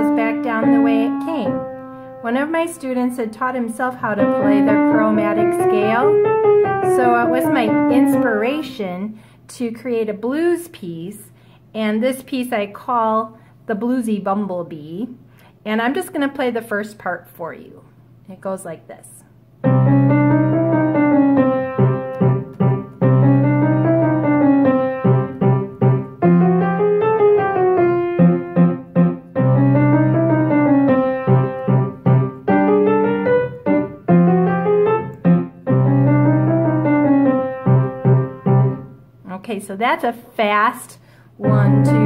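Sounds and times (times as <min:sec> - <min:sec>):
fast blues piano: 0:00.0 - 0:08.8, 0:19.6 - 0:38.9, 0:41.4 - 0:42.0.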